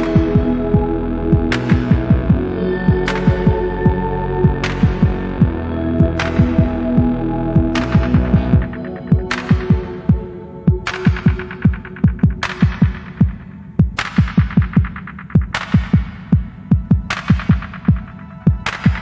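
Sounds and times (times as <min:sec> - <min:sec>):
held synth chords: 0:00.0 - 0:13.8.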